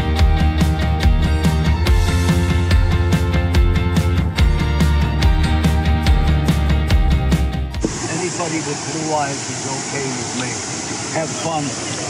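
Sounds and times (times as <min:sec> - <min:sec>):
people talking: 0:07.8 - 0:12.0
white water roaring: 0:07.8 - 0:12.0.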